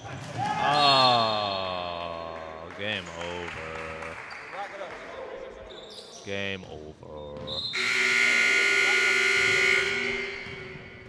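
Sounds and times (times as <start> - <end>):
scoreboard buzzer: 7.8 - 11.0.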